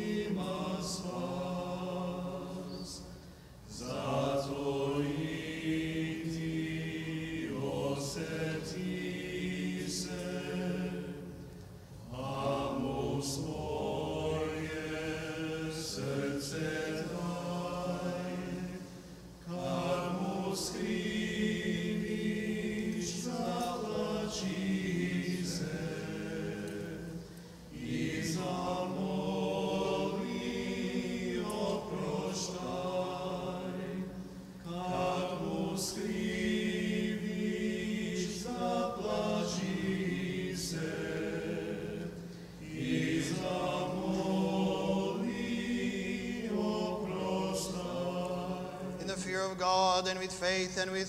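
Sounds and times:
voices singing slow chant: 0.0s - 51.0s.

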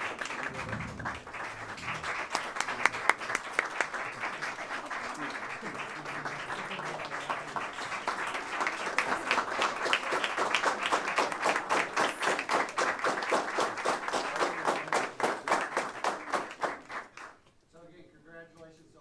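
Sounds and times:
audience applauding: 0.0s - 17.4s.

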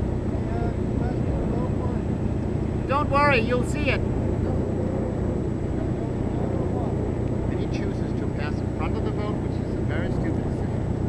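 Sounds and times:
low engine drone: 0.0s - 11.0s
faint voices: 2.9s - 10.8s.

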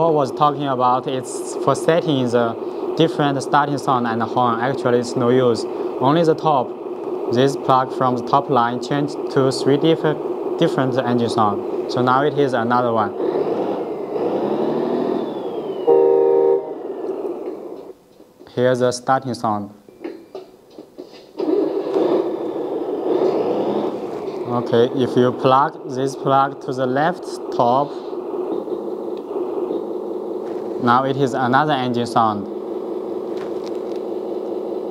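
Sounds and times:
simulated truck engine: 0.0s - 18.2s, 20.6s - 34.9s
high whistle falling in pitch: 15.4s - 17.1s
horn blast: 15.9s - 17.0s.

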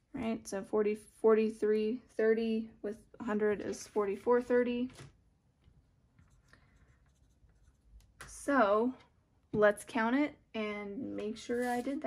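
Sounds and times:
pencil scratching on paper: 6.2s - 8.2s, 11.4s - 12.0s.

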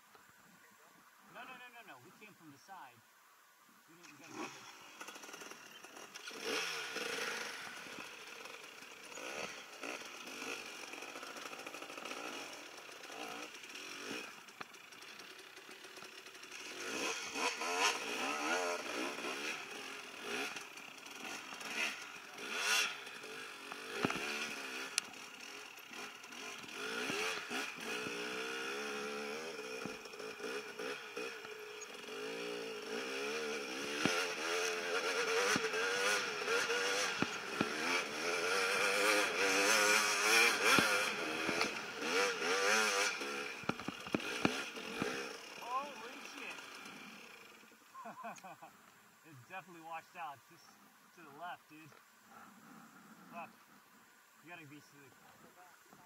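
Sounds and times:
dirt bike engine revving: 3.9s - 55.3s.

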